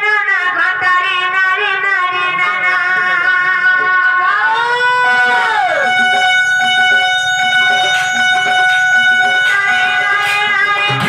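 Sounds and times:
electronic keyboard melody: 5.0 - 11.0.

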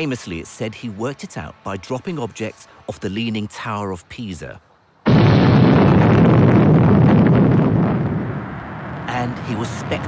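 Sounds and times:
rocket engines rumbling: 5.0 - 10.0.

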